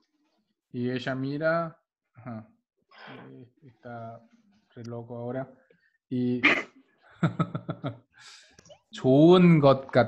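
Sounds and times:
man laughing: 6.4s - 8.0s.

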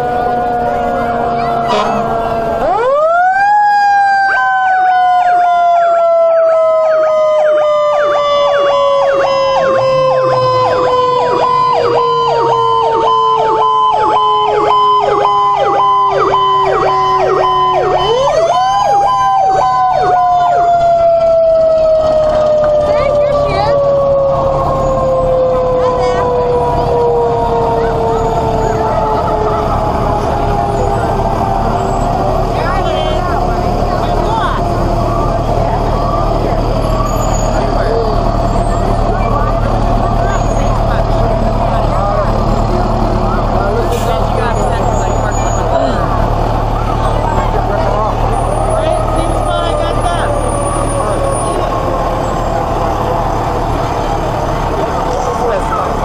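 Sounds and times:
diesel engines rumbling: 0.0s - 56.0s
siren sliding down in pitch: 0.0s - 56.0s.

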